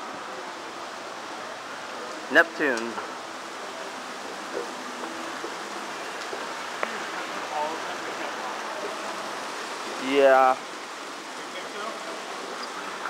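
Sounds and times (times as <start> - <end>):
faint voices: 0.0 - 13.0
fountain water running: 0.0 - 13.0.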